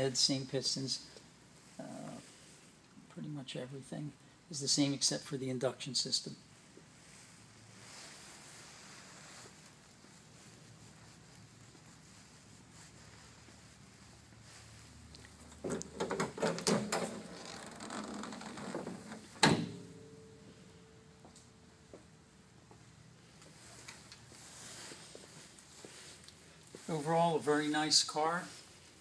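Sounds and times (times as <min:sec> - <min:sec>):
clicks and knocks: 0:15.5 - 0:20.0.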